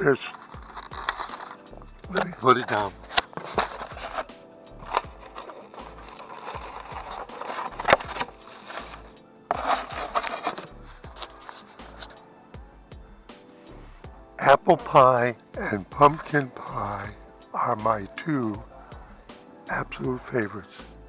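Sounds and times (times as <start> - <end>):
paper bag rustling: 0.0 - 12.1
background music with beat: 0.0 - 21.0
styrofoam containers clicking: 0.2 - 12.2.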